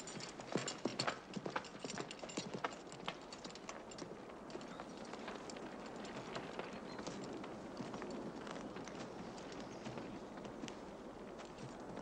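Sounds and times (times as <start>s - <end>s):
horse hoofbeats on grass: 0.0s - 12.0s.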